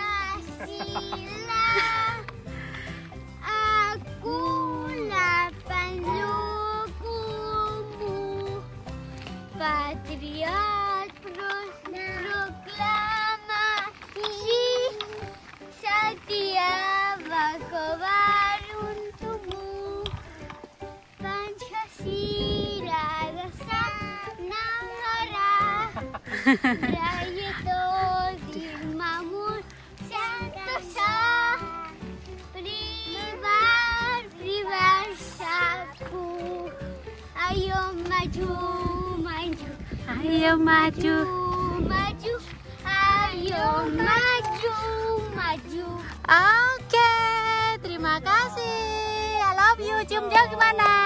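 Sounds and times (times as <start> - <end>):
young child singing: 0.0 - 2.3, 3.4 - 8.7, 9.5 - 20.5, 21.2 - 26.0, 26.8 - 50.9.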